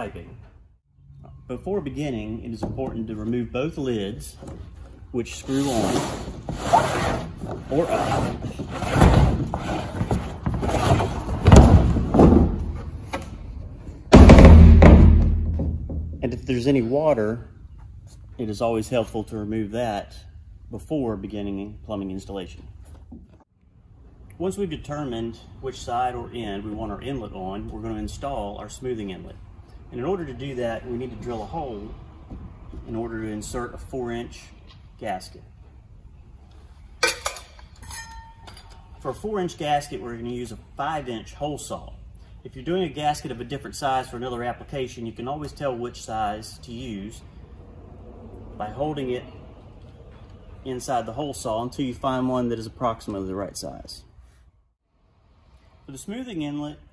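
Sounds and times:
loud knocks: 0:11.3 - 0:12.9, 0:14.1 - 0:16.3
metal clinking: 0:37.0 - 0:39.0.

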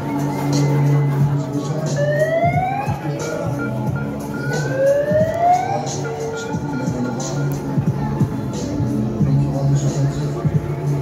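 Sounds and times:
music playing: 0:00.0 - 0:11.0
rising siren wails: 0:02.0 - 0:03.0, 0:04.6 - 0:06.0.

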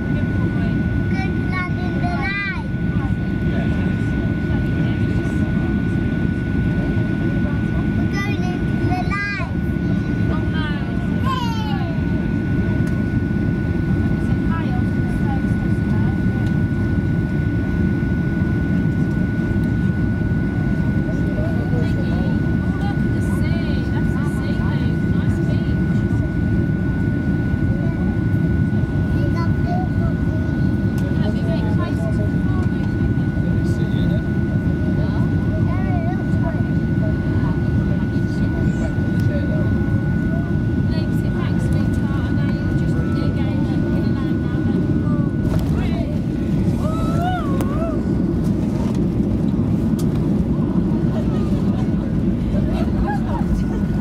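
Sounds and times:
jet engine low rumble: 0:00.0 - 0:54.0
thin steady whine: 0:00.0 - 0:54.0.

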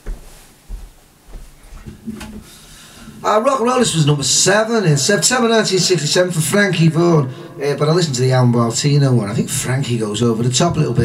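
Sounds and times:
soft footsteps on carpet: 0:00.0 - 0:02.6.

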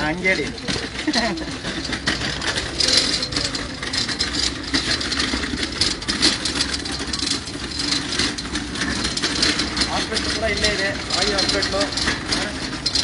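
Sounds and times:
rustles and knocks: 0:00.0 - 0:13.0
vehicle engine idling: 0:00.0 - 0:13.0.

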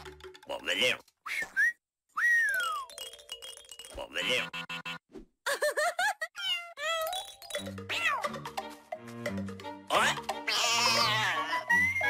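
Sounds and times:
cartoon whistling: 0:01.2 - 0:02.9.

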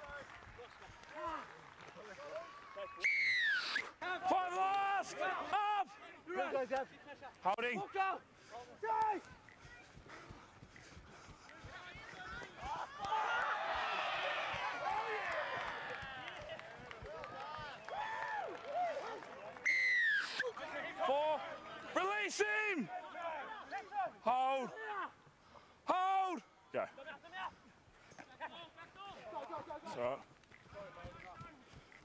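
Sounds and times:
crowd cheering: 0:00.0 - 0:06.0, 0:11.6 - 0:24.0
people shouting: 0:11.7 - 0:16.5.

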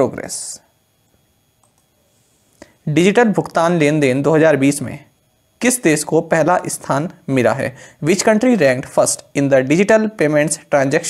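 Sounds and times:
man speaking: 0:00.0 - 0:00.7, 0:02.8 - 0:11.0.

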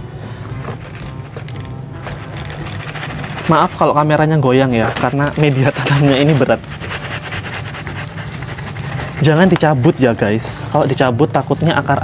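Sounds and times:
plastic plant pot scraping: 0:00.6 - 0:04.1, 0:04.7 - 0:10.1.

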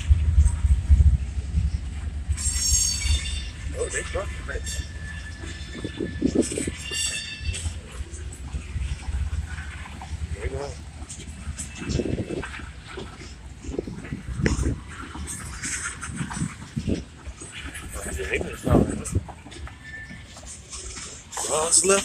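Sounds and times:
freight train rumbling: 0:00.0 - 0:22.0.

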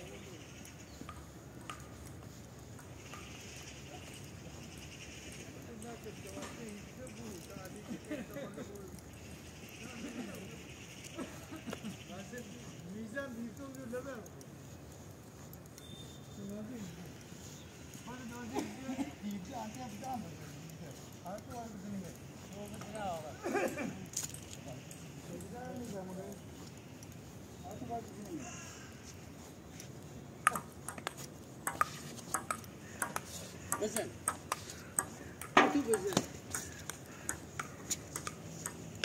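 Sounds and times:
sharp clicks: 0:00.1 - 0:18.5, 0:24.0 - 0:39.0
people talking: 0:05.5 - 0:09.0, 0:09.7 - 0:14.3, 0:16.3 - 0:17.2, 0:18.0 - 0:26.6, 0:27.6 - 0:28.7, 0:33.0 - 0:34.5, 0:35.6 - 0:36.9.

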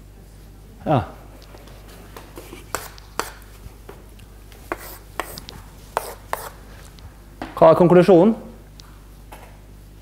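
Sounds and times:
chalk tapping on chalkboard: 0:02.2 - 0:03.4, 0:04.6 - 0:06.6
chalk scratching strokes: 0:02.4 - 0:03.4, 0:04.7 - 0:06.6.

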